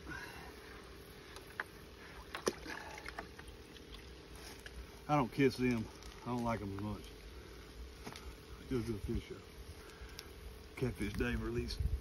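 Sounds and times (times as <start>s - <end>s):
water sloshing in plastic bucket: 2.2s - 4.1s.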